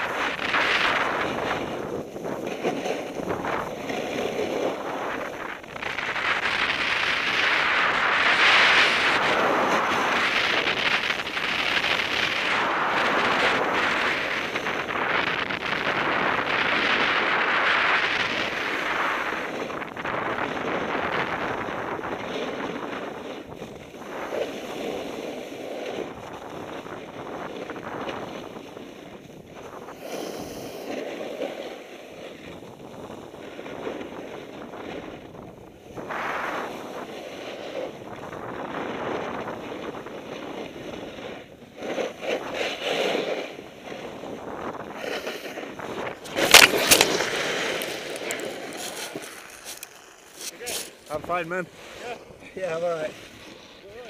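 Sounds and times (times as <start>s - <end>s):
skis scraping over hard snow: 0.0s - 54.0s
wind rushing across microphone: 0.0s - 54.0s.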